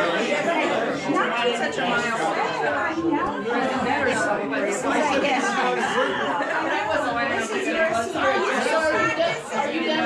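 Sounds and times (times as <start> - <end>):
overlapping conversation: 0.0 - 10.0.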